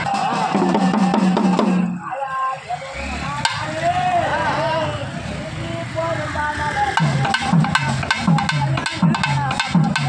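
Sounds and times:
procession drums beating: 0.0s - 2.0s, 3.4s - 3.8s, 6.9s - 10.0s
crowd talking and calling out: 0.0s - 9.7s.

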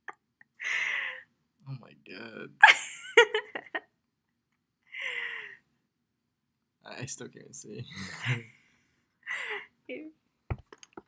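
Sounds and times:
person laughing: 2.6s - 3.8s.

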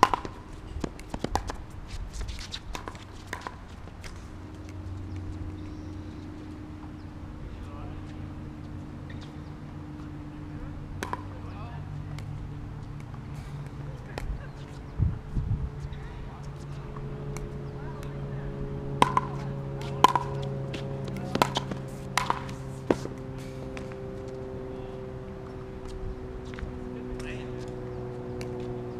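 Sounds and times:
tennis ball pops: 0.0s - 1.6s, 11.0s - 11.3s, 19.0s - 24.0s
steady low hum: 0.0s - 28.9s.

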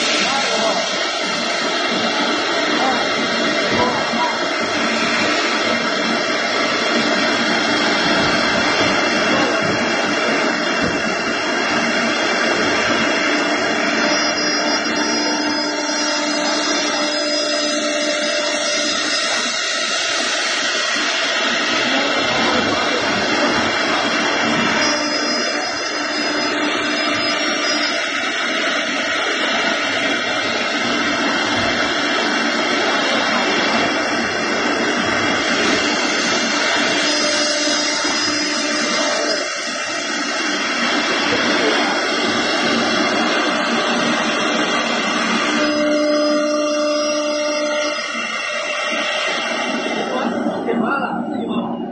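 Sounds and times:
cnc router spindle whine: 0.0s - 51.9s.

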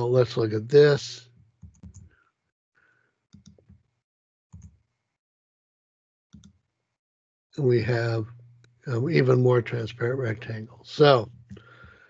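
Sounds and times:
faint mouse and keyboard clicks: 1.6s - 2.2s, 3.3s - 3.8s.

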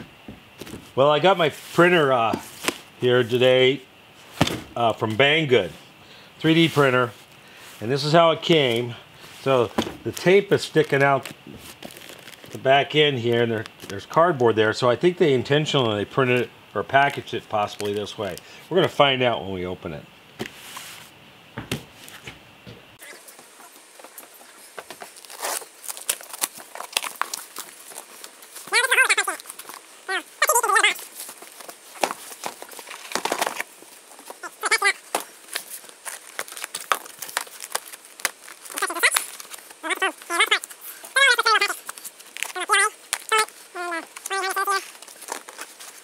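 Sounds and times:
cardboard scraping and knocking: 0.0s - 1.0s, 4.4s - 4.8s, 9.7s - 10.2s
packing tape ripping: 9.7s - 12.6s, 24.5s - 46.0s.

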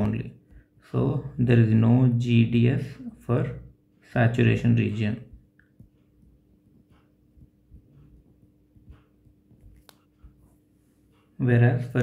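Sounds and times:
stylus tapping on tablet screen: 5.2s - 11.3s.

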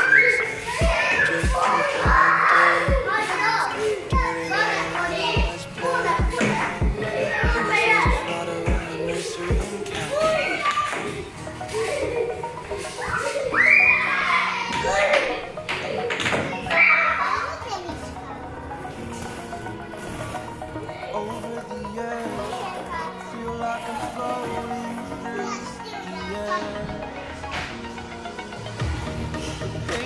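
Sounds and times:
children shouting and chattering: 0.0s - 30.0s
faint background music: 0.0s - 30.0s.

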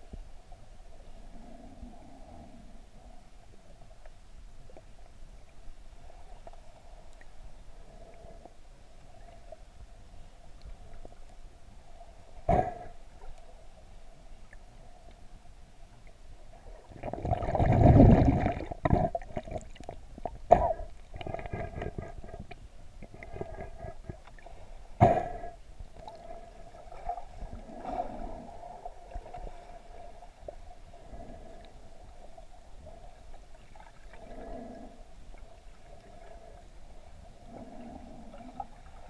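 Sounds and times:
underwater water gurgling: 15.9s - 39.0s.

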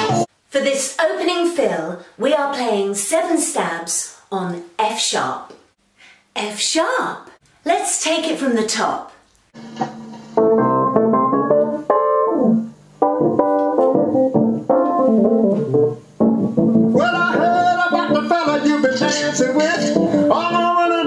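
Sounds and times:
soul band playing: 0.0s - 0.3s, 9.6s - 20.9s
hammond organ playing: 10.3s - 20.9s.

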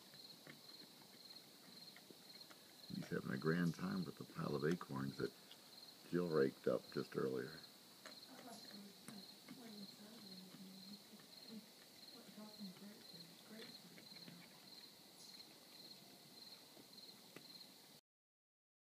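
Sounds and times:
bear chewing acorns: 0.0s - 7.2s, 7.8s - 17.5s
insect chirping: 0.0s - 18.0s.

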